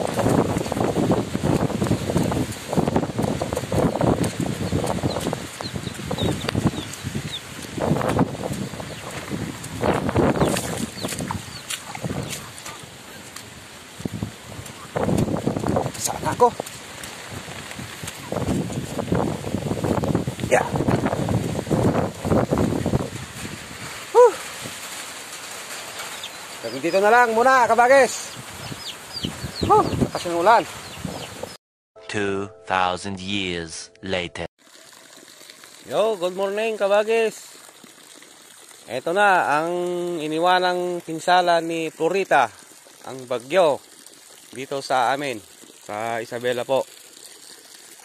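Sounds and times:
footsteps on muddy path: 0:00.0 - 0:24.0
outdoor background noise: 0:21.8 - 0:27.5, 0:37.5 - 0:41.5.

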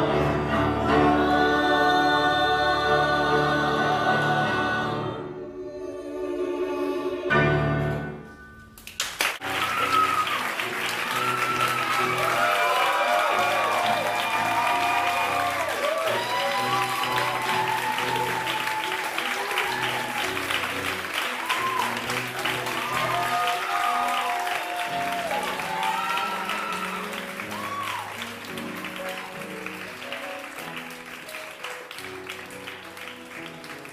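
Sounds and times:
audience applauding: 0:08.8 - 0:33.9.

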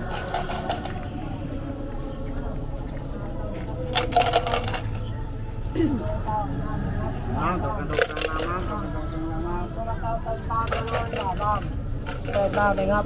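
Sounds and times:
crowd chatter: 0:00.0 - 0:13.0
bright metallic clinking: 0:03.9 - 0:05.1.

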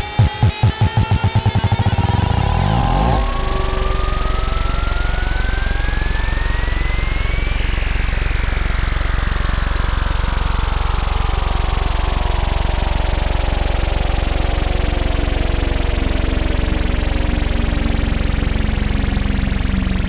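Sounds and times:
pulsing low synthesizer buzz: 0:00.0 - 0:20.0.

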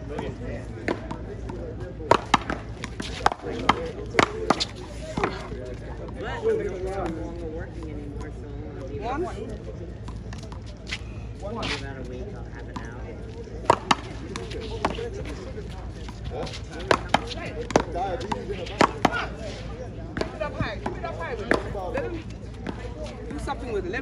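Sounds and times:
ball bouncing off concrete wall: 0:02.1 - 0:05.4, 0:13.6 - 0:15.1, 0:16.3 - 0:19.3
paddles hitting rubber ball: 0:02.1 - 0:05.4, 0:13.6 - 0:15.4, 0:16.3 - 0:19.4.

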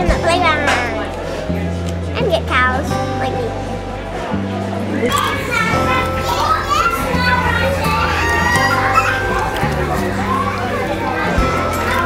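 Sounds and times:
background music: 0:00.0 - 0:12.0
children chattering: 0:00.0 - 0:12.0.

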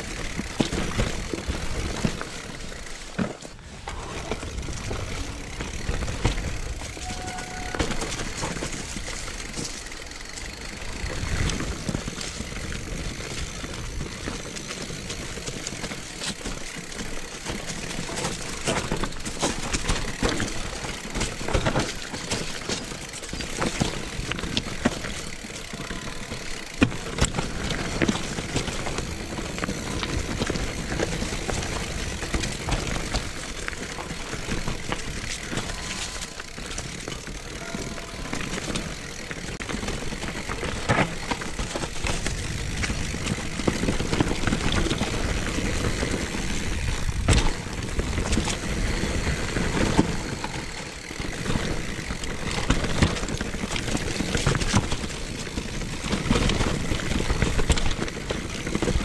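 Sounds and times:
bike clicks and rattles: 0:00.0 - 0:59.0.

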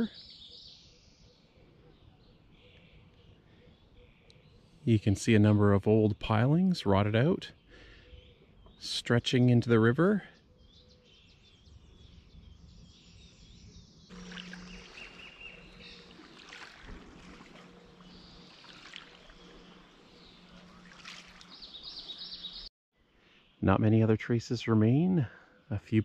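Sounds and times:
faint bird chirps: 0:10.4 - 0:23.8
low steady hum: 0:14.1 - 0:22.7.

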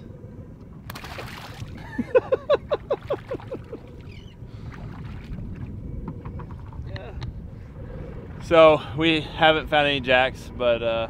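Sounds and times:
water noise: 0:00.0 - 0:11.0
wind: 0:00.0 - 0:11.0
man laughing: 0:01.8 - 0:03.9.

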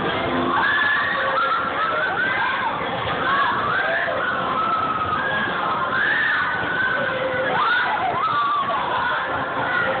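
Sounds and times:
amusement ride rushing din: 0:00.0 - 0:10.0.

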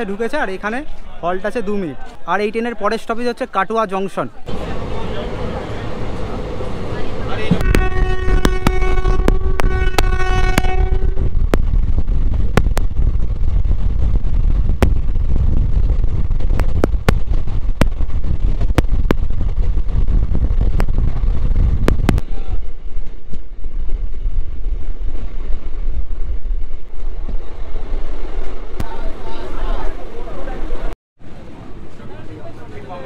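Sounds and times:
train coaches rumbling: 0:04.3 - 0:33.0
train horn: 0:07.4 - 0:11.3.

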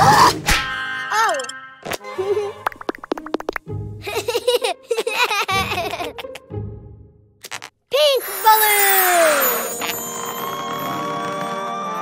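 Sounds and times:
long descending whistle: 0:08.4 - 0:12.0.

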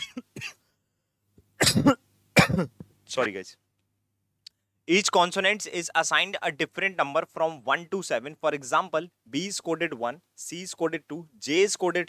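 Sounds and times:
man clearing his throat: 0:00.0 - 0:00.6, 0:01.6 - 0:02.8
man coughing: 0:00.0 - 0:00.7, 0:01.6 - 0:02.8.

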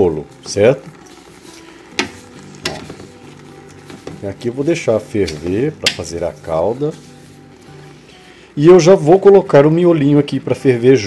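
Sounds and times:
wooden spoon scraping sugar in pot: 0:00.5 - 0:08.1.

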